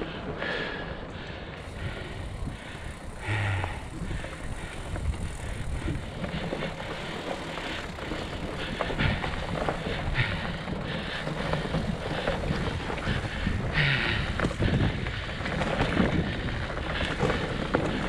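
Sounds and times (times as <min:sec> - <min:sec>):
bike rattles and knocks: 0:01.6 - 0:18.0
bike tyres crunching over leaves: 0:01.6 - 0:18.0.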